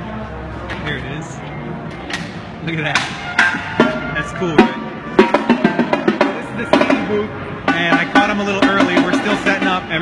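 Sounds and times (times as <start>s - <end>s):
background music: 0.0s - 10.0s
snare and drum hits: 2.2s - 9.8s.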